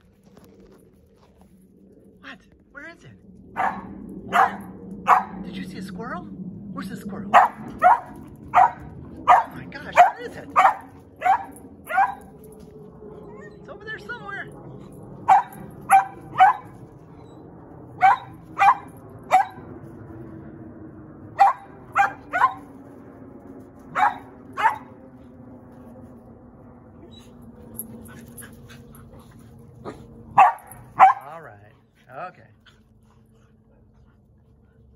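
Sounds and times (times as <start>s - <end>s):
dog barking: 3.6s - 5.4s, 7.3s - 12.3s, 15.2s - 16.8s, 18.0s - 19.7s, 21.4s - 22.7s, 23.9s - 24.9s, 29.9s - 31.4s.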